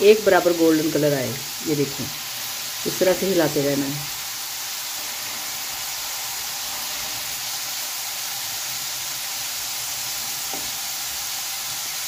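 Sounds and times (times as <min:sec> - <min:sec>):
potatoes deep-frying in oil: 0:00.0 - 0:12.0.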